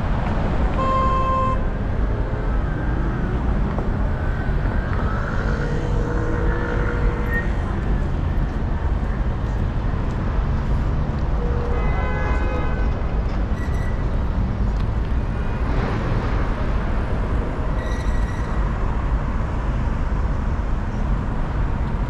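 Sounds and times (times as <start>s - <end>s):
traffic rumble: 0.0s - 22.0s
short beep: 13.6s - 14.1s.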